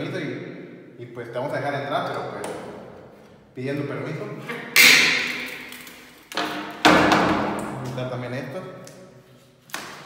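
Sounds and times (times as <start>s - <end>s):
sharp wooden knocks: 6.3s - 7.8s.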